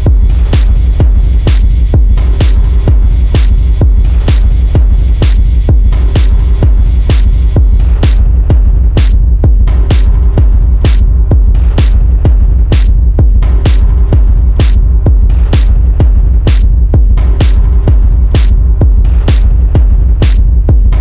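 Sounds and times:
dark minimal techno: 0.0s - 21.0s.

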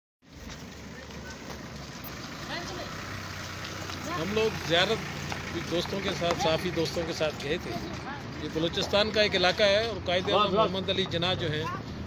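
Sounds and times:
low rumble of vehicle traffic: 0.2s - 12.0s.

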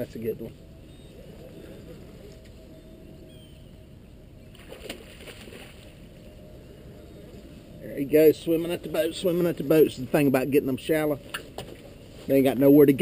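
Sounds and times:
low rumble of water and wind: 0.0s - 13.0s.

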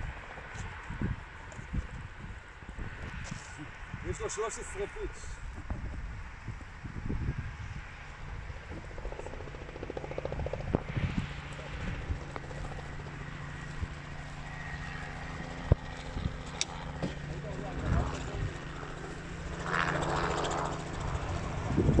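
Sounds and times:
distant helicopter drone: 0.0s - 22.0s.

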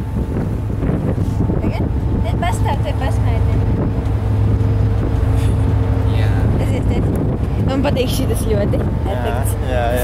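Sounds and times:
ship engines droning: 0.0s - 10.0s
wind on microphone: 0.0s - 10.0s.

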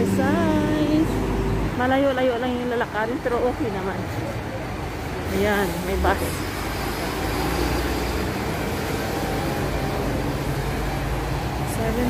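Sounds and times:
bus diesel engine rumbling: 0.0s - 12.0s.

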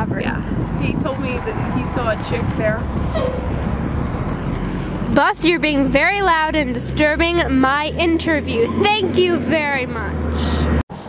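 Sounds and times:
bus driving past: 0.4s - 11.0s.

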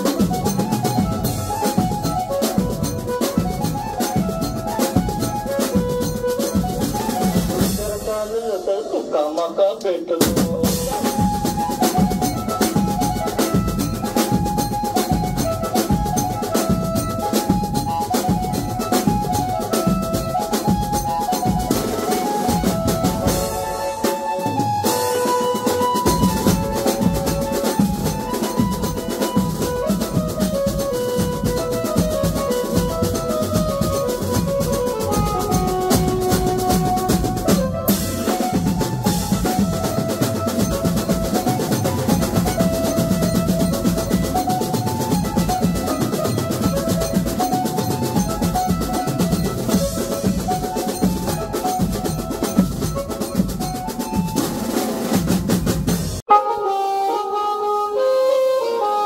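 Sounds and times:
electronic keyboard melody: 0.0s - 8.0s, 10.6s - 55.2s, 56.2s - 59.0s
fast drumming with cymbals: 0.0s - 9.1s, 10.2s - 56.3s.

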